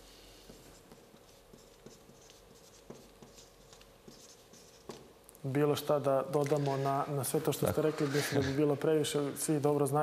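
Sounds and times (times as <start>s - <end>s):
marker scratching on paper: 0.5s - 5.1s.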